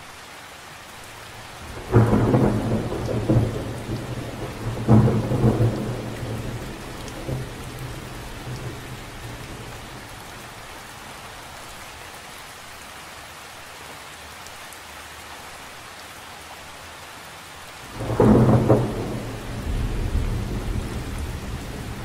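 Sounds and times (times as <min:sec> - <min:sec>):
rain falling on water: 0:00.0 - 0:22.0
thunder clap and rumble: 0:01.6 - 0:10.6, 0:17.9 - 0:22.0.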